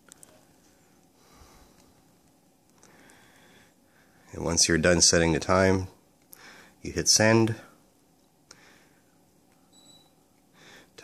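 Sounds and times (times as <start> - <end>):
faint short high beep: 9.7 - 10.2.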